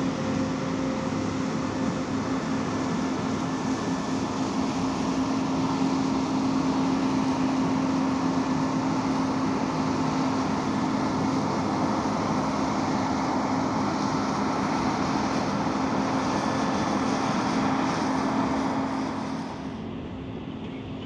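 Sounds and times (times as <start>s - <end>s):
combine harvester droning: 0.0s - 21.0s.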